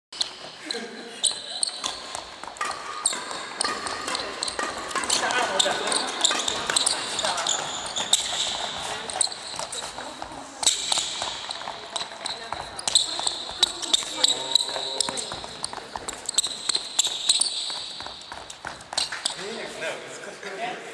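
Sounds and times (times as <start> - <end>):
shoe squeaks: 0.2 - 19.8
voices talking: 3.1 - 17.5.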